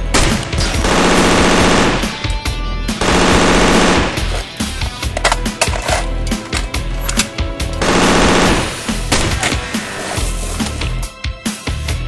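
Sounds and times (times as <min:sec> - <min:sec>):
automatic gunfire bursts: 0:00.2 - 0:02.2, 0:03.0 - 0:04.3, 0:07.8 - 0:09.4.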